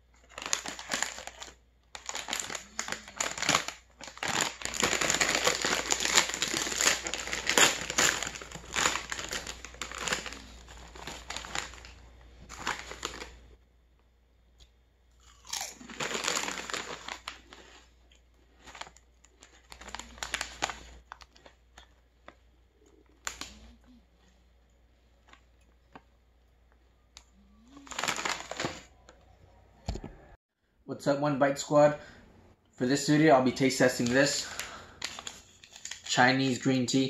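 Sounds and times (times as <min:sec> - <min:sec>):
foil chip bag crinkling: 0:00.1 - 0:13.5, 0:15.2 - 0:24.0, 0:27.2 - 0:29.2, 0:33.0 - 0:37.0
chips crunching: 0:00.2 - 0:13.4, 0:15.2 - 0:23.8.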